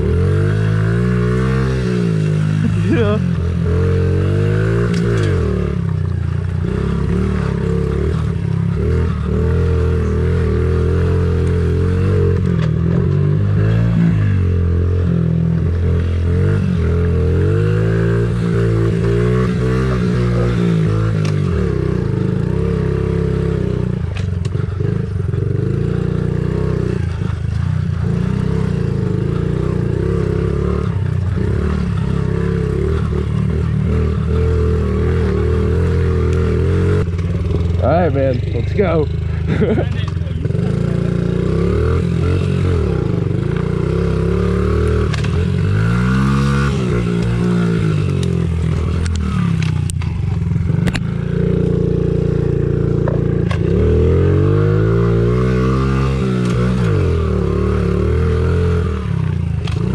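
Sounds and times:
small motorbike engine revving: 0.0 - 59.9.

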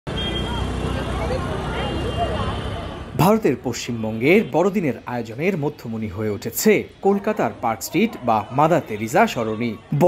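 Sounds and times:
traffic rumble: 0.1 - 10.0
crowd chatter: 0.2 - 10.0.

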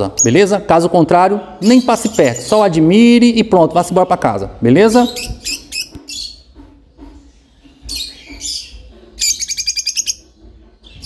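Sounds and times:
lovebirds calling: 0.0 - 3.2, 3.9 - 11.0
lovebird chattering: 4.9 - 6.5, 7.8 - 11.0.

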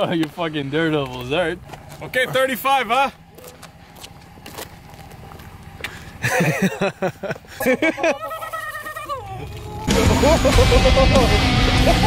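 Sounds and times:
pickup truck idling: 0.0 - 12.0.

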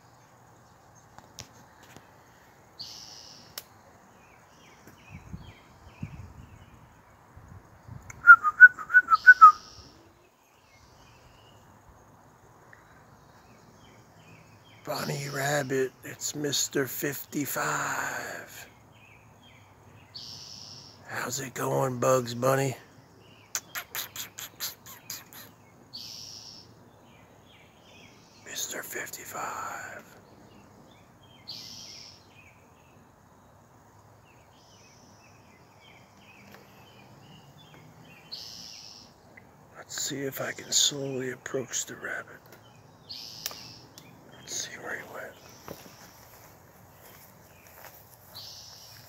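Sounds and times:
short whistled notes: 8.2 - 9.6
small bird chipping: 20.0 - 32.6, 34.4 - 46.4.

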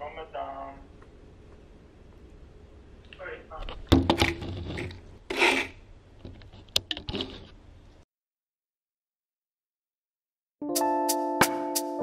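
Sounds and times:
rubbing and scraping: 4.2 - 7.6.

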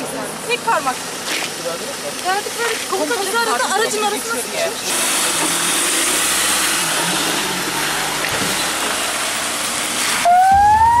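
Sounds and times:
van engine and road noise: 0.0 - 10.9.

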